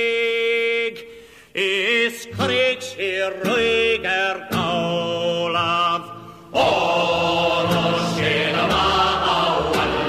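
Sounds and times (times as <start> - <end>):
choral singing: 6.5 - 10.0.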